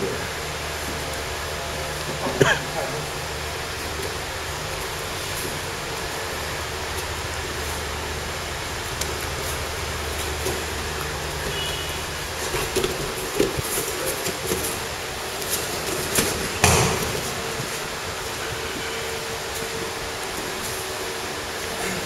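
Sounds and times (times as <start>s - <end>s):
electric fans humming: 0.0s - 22.0s.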